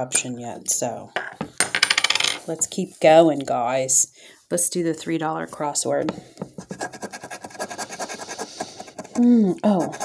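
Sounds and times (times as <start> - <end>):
coin scraping scratch card: 6.7 - 9.2.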